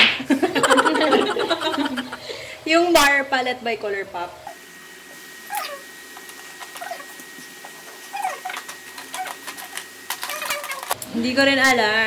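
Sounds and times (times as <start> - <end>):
animal whimpering: 5.5 - 11.0.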